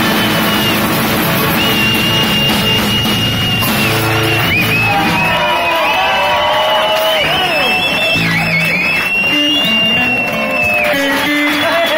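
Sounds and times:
keyboard playing: 0.0 - 6.2
guitars: 0.0 - 11.9.

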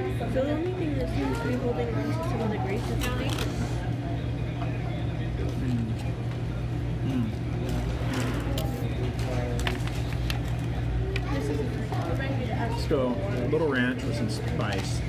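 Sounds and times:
faint background voices: 0.0 - 15.0
steady low hum: 0.0 - 15.0.

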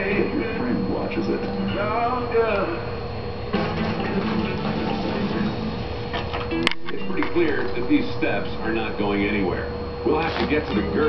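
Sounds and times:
faint hum-like tone: 0.0 - 11.0
television voices and sound: 0.0 - 11.0.

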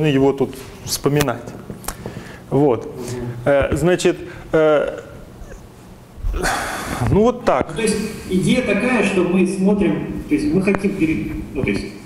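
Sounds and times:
man breathing noisily: 1.8 - 3.4, 6.3 - 7.1.

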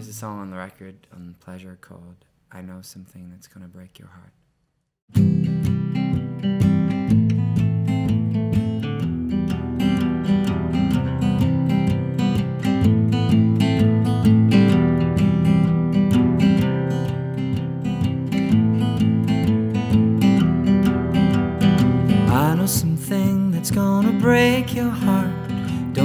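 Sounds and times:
acoustic guitar strumming: 5.1 - 26.0.

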